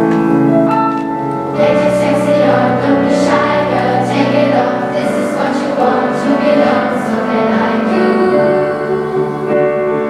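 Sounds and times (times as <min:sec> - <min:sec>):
instrumental accompaniment: 0:00.0 - 0:10.0
children's choir singing: 0:01.5 - 0:10.0.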